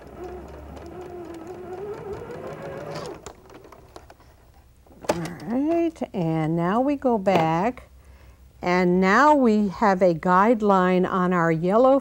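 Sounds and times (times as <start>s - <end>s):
sewing machine motor whine: 0.0s - 3.9s.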